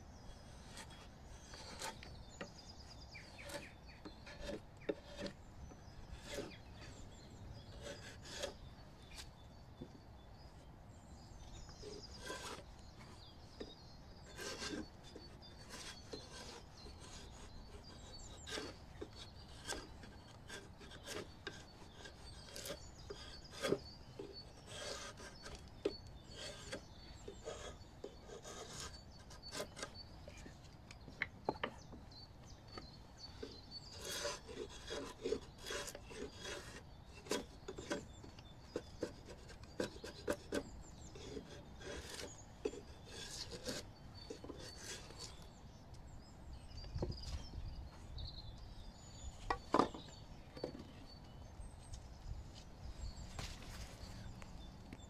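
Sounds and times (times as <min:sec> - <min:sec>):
drawknife scraping wood: 0:00.5 - 0:09.4, 0:11.6 - 0:32.0, 0:32.7 - 0:45.6, 0:49.4 - 0:50.9.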